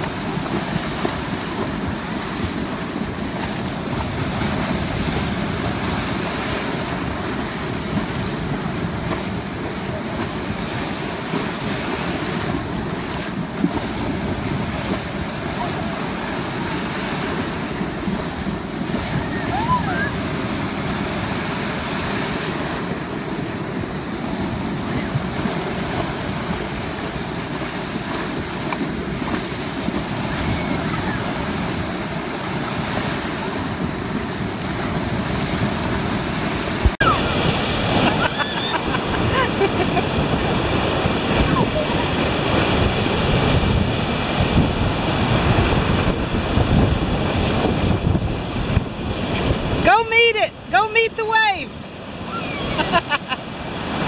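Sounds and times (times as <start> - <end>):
horse legs churning water: 0.0 - 54.0
ocean surf breaking: 0.0 - 54.0
wind on microphone: 0.0 - 54.0.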